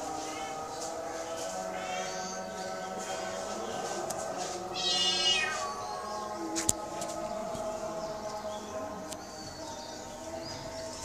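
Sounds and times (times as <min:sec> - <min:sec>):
kitten meowing: 0:04.8 - 0:05.6.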